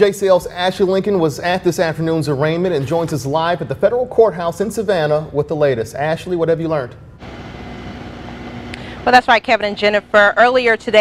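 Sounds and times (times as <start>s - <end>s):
low background hum: 3.4s - 11.0s.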